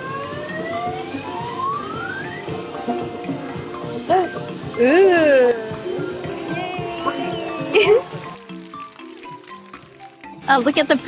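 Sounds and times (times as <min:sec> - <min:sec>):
synthesized game music melody: 0:00.0 - 0:10.3.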